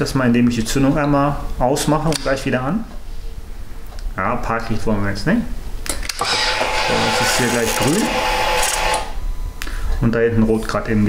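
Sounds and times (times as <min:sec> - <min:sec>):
electric whirr: 0:06.1 - 0:09.2.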